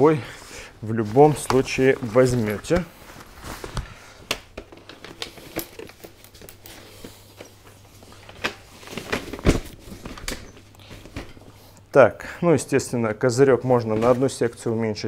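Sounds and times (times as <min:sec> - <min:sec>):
fabric canopy rustling: 0:00.8 - 0:04.2.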